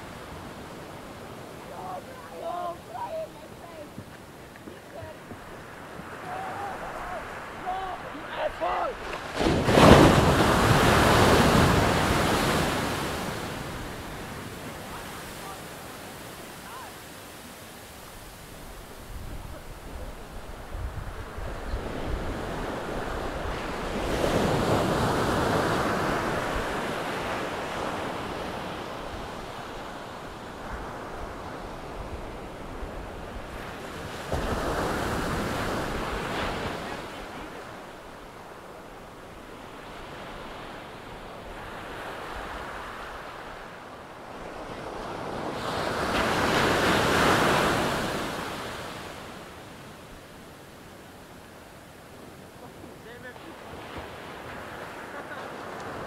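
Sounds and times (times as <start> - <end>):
ocean waves breaking: 0.0 - 56.0.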